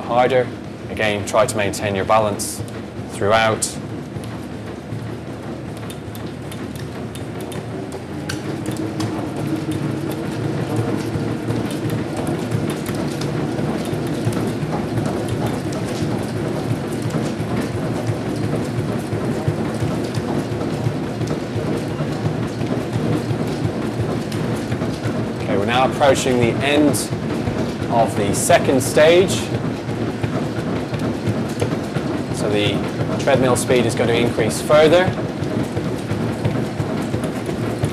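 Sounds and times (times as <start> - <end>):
running footfalls on treadmill: 0.0 - 37.9
treadmill motor and belt: 0.0 - 37.9.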